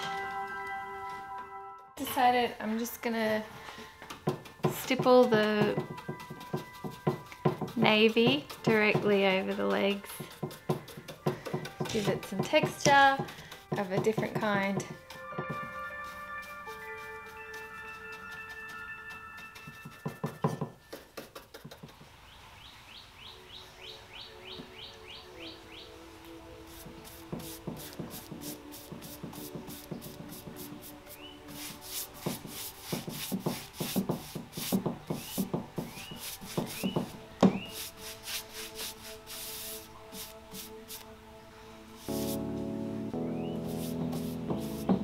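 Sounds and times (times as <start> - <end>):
soft background music: 0.0 - 21.5, 22.9 - 45.0
paintbrush scratching on wood: 4.0 - 22.0, 26.7 - 41.1, 42.0 - 42.5, 43.2 - 45.0.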